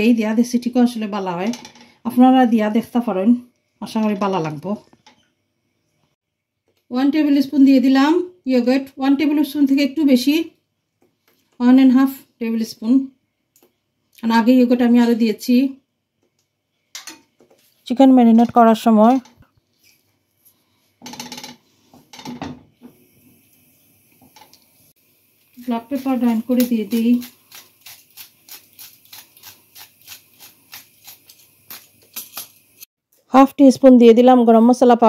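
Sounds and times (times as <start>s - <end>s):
pepper mill grinding clicks: 26.5s - 32.6s.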